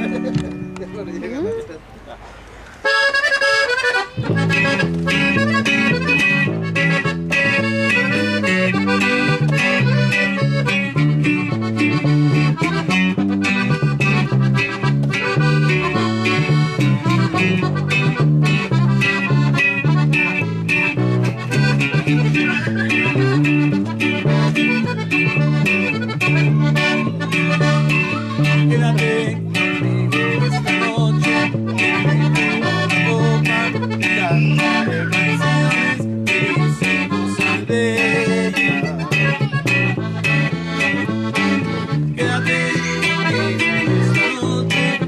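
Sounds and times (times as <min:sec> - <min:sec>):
bass keeping a steady beat: 0:00.0 - 0:01.4, 0:03.7 - 0:45.0
strummed twelve-string guitar: 0:00.0 - 0:01.4, 0:02.9 - 0:45.0
accordion melody: 0:00.0 - 0:02.0, 0:02.8 - 0:45.0.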